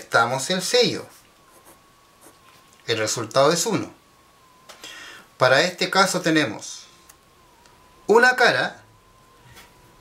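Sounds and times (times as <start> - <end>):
man talking: 0.0 - 1.2, 2.8 - 4.0, 5.4 - 6.9, 8.1 - 8.8.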